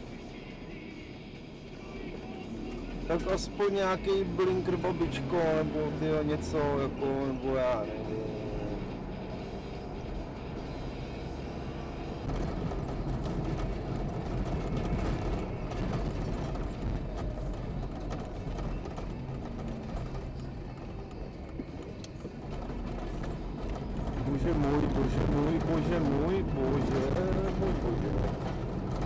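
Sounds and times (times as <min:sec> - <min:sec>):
car engine and road noise: 0:00.0 - 0:29.0
music playing: 0:00.0 - 0:29.0.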